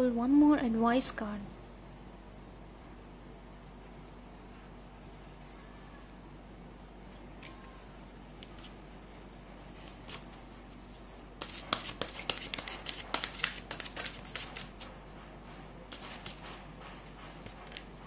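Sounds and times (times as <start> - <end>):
cards being shuffled: 7.2 - 15.0.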